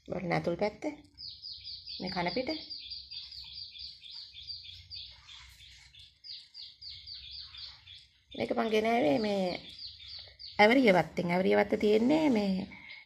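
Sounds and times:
small bird chirping: 0:00.1 - 0:13.0.

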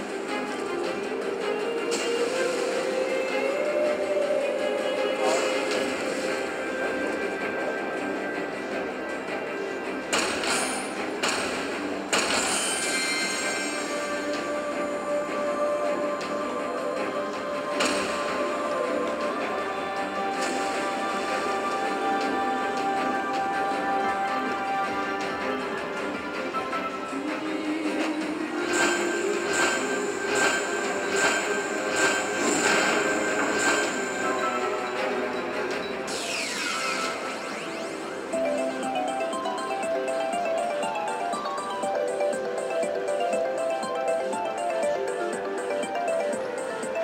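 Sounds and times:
slot machine background music: 0:00.0 - 0:47.0.

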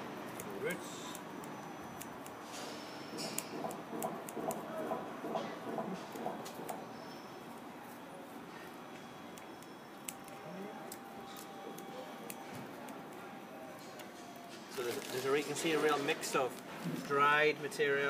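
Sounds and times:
scissors snipping grass: 0:00.3 - 0:06.8.

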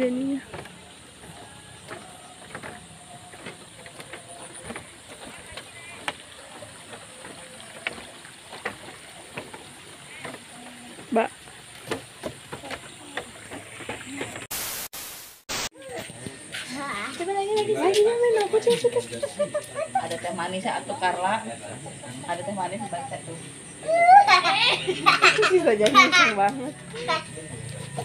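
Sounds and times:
footsteps on wooden walkway: 0:00.0 - 0:14.5, 0:16.0 - 0:21.2
burst of static hiss: 0:14.5 - 0:15.8.

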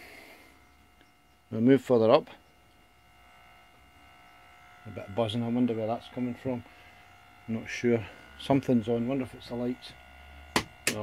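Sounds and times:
electrical interference buzz: 0:00.0 - 0:11.0.

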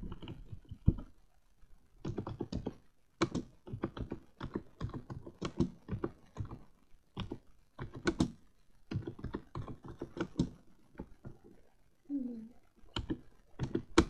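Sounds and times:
typing on a keyboard: 0:00.0 - 0:01.1, 0:02.0 - 0:11.5, 0:12.9 - 0:14.0.

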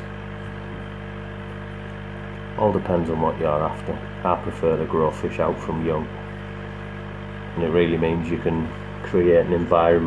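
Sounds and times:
aquarium pump humming: 0:00.0 - 0:10.0.

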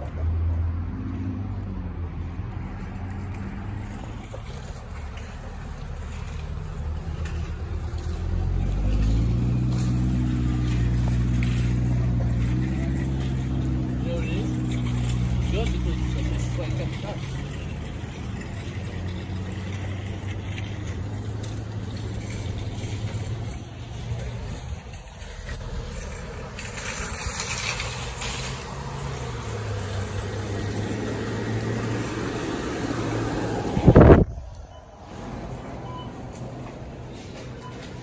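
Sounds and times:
traffic noise: 0:00.0 - 0:38.0
vehicle engine hum: 0:00.0 - 0:38.0.

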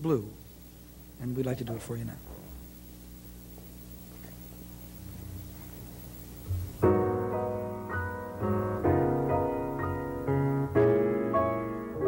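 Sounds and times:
faint steady hum: 0:00.0 - 0:12.0
grand piano chords: 0:06.4 - 0:12.0.

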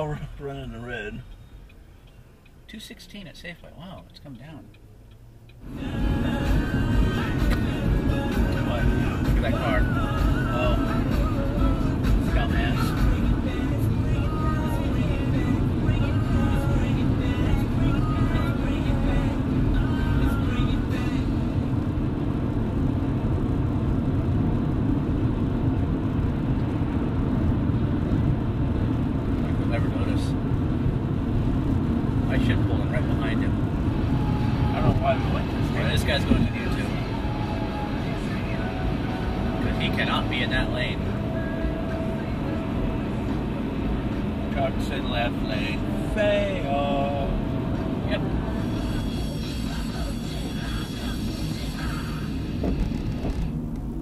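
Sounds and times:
car road and engine noise: 0:00.0 - 0:54.0
faint car radio music: 0:00.0 - 0:54.0.

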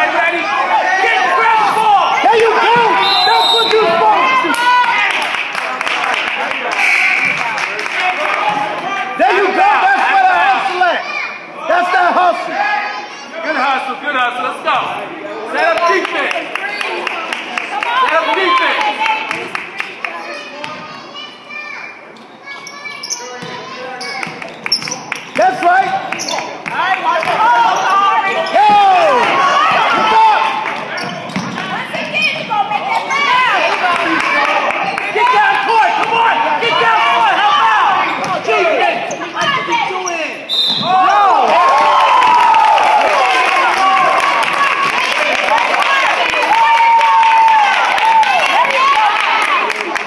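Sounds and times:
voices echoing in hall: 0:00.0 - 0:50.0
basketball bouncing on court: 0:23.4 - 0:23.6, 0:31.0 - 0:32.5.

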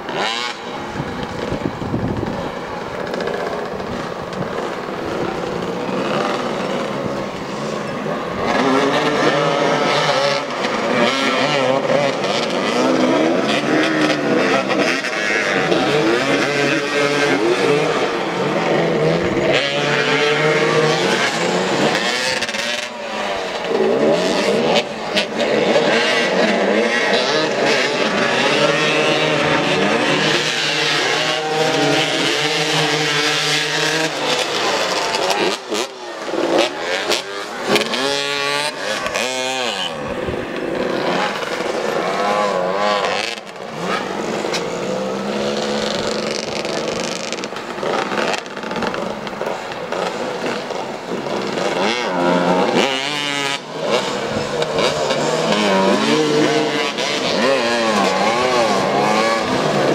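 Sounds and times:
motorcycle engines revving: 0:00.0 - 0:59.9.

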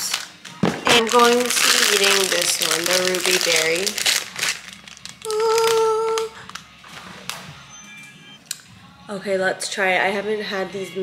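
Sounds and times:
plastic wrapper crinkling: 0:00.0 - 0:07.4
person humming: 0:05.2 - 0:06.6.

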